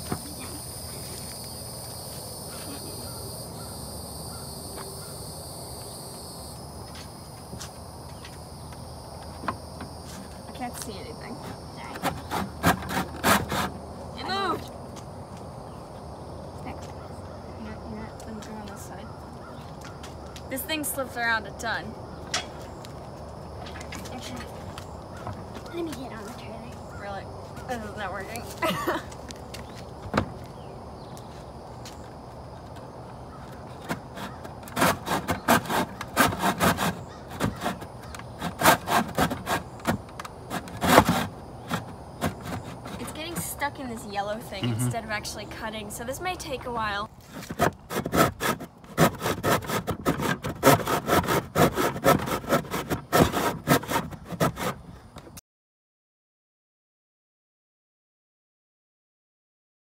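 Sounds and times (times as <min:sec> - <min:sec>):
hand saw cutting wood: 0:12.0 - 0:14.5, 0:33.8 - 0:43.4, 0:47.2 - 0:54.8.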